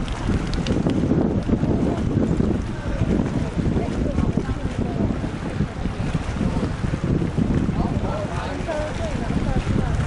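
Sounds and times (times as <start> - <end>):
wind buffeting microphone: 0.0 - 10.0
faint voices: 1.4 - 10.0.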